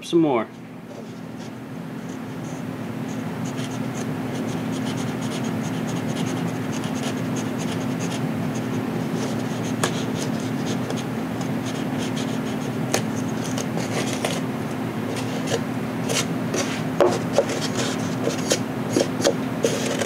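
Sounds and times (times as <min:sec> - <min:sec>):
knife scraping foam: 0:11.7 - 0:14.4, 0:15.1 - 0:20.0.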